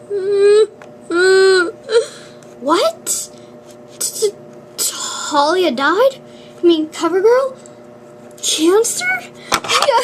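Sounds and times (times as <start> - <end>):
girl sobbing and crying: 0.0 - 2.4.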